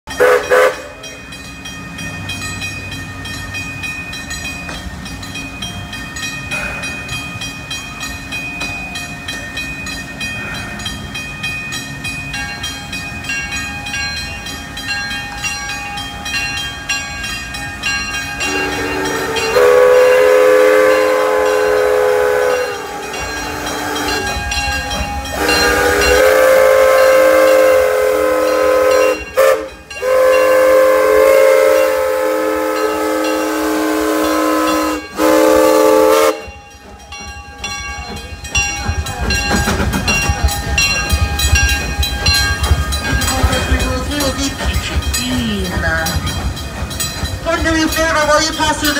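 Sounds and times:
steam locomotive chime whistle: 0:00.1 - 0:01.7, 0:08.6 - 0:48.9
railroad crossing bell ringing: 0:00.1 - 0:48.9.

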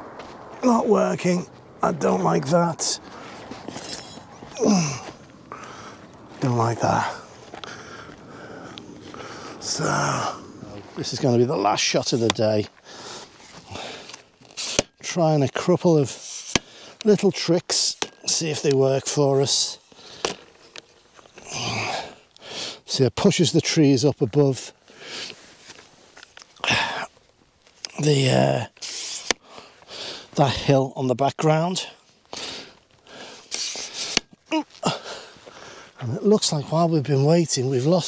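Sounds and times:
man speaking: 0:00.6 - 0:03.1, 0:06.4 - 0:07.3, 0:09.6 - 0:12.7, 0:17.0 - 0:19.8, 0:27.9 - 0:28.7, 0:30.4 - 0:32.0, 0:36.0 - 0:38.0
man groaning: 0:04.5 - 0:05.2, 0:09.6 - 0:10.7, 0:34.5 - 0:35.2
man breathing out hard: 0:04.5 - 0:06.1, 0:07.2 - 0:10.5, 0:12.8 - 0:14.2, 0:34.8 - 0:36.0.

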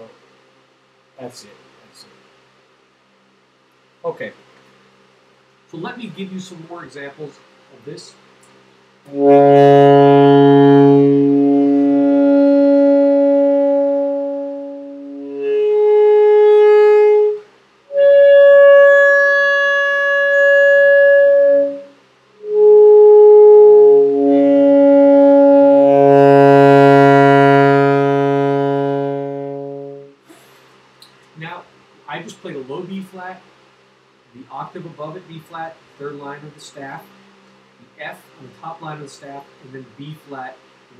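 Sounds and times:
saxophone long tones: 0:09.1 - 0:30.2.

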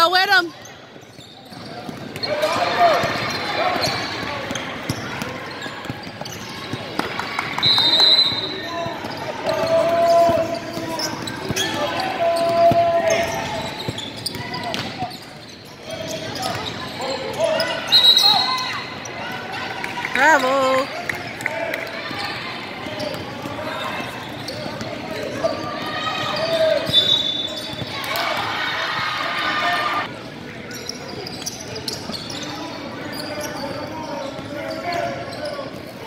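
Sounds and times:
sneaker squeaks: 0:00.1 - 0:19.4, 0:22.0 - 0:36.0.

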